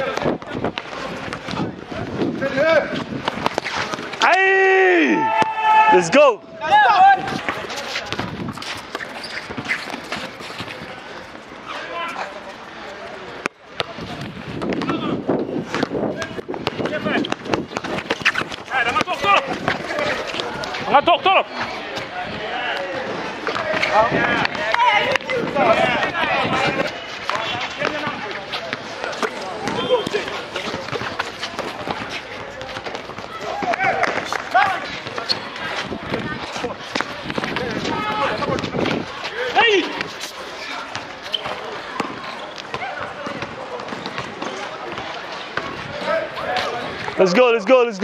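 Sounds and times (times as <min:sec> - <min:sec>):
footsteps on court: 0:00.0 - 0:04.4, 0:06.9 - 0:12.6, 0:13.3 - 0:48.0
players calling out: 0:00.0 - 0:48.0
basketball bouncing on concrete: 0:07.2 - 0:11.0, 0:13.8 - 0:20.8, 0:23.4 - 0:39.1, 0:40.8 - 0:45.8.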